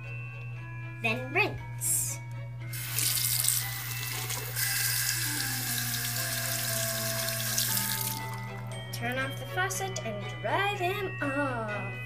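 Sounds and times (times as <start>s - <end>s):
faucet water splashing over hands: 2.7s - 8.6s.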